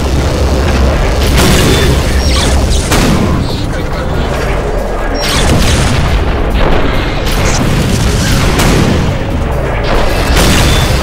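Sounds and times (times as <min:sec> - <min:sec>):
background music: 0:00.0 - 0:11.0
heavy explosion booms: 0:05.4 - 0:11.0.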